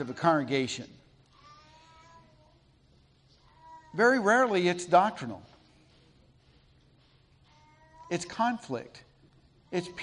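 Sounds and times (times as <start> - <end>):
faint high-pitched voice-like sound: 1.3 - 4.4, 7.4 - 8.8.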